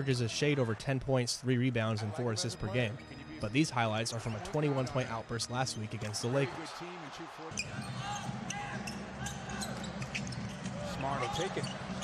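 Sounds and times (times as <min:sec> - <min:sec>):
commentator talking: 0:00.0 - 0:07.6
arena crowd noise: 0:00.0 - 0:12.0.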